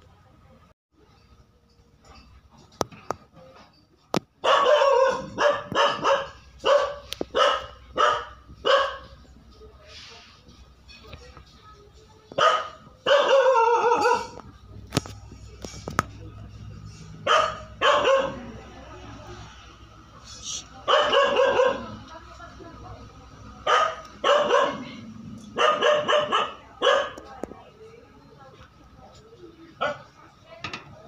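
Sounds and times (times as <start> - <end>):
dog barking: 4.4 - 9.2, 12.4 - 14.4, 17.2 - 18.6, 20.8 - 22.0, 23.6 - 27.3, 29.8 - 30.2.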